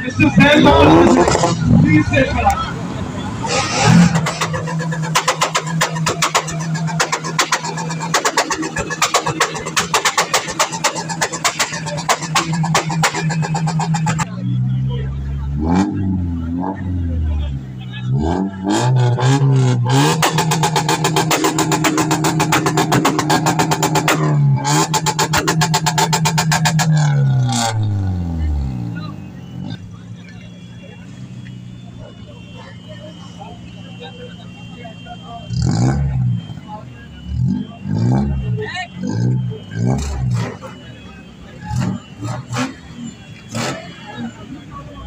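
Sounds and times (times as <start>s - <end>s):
car engine idling: 0.0s - 15.6s, 19.8s - 45.0s
car engine revving: 0.0s - 45.0s.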